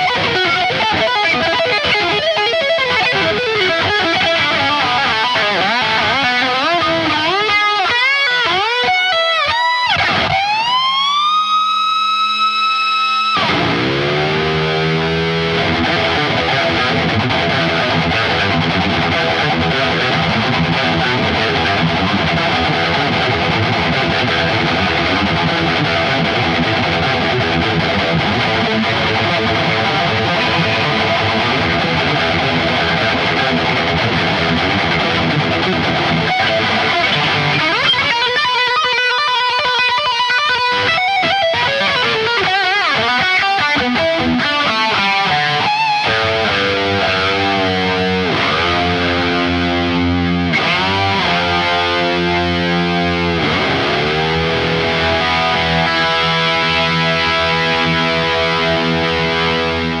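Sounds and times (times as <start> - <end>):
distorted electric guitar solo: 0.0 - 60.0.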